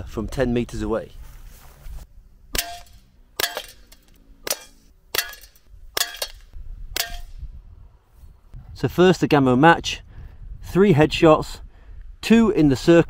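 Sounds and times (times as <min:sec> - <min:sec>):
air revolver shots: 0:02.5 - 0:07.4.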